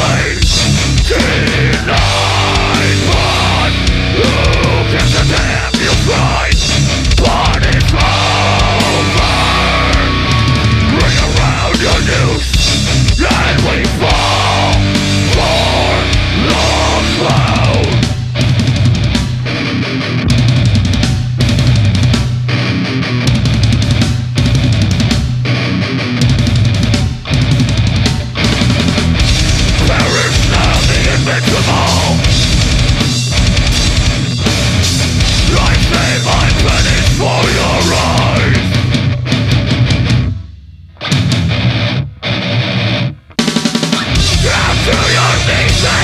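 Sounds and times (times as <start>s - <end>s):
heavy metal band playing riff: 0.0s - 46.0s.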